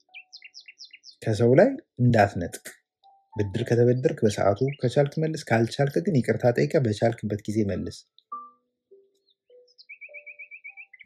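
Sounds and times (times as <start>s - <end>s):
bird chirping: 0.0s - 11.0s
man speaking loudly: 1.2s - 2.7s, 3.4s - 8.0s.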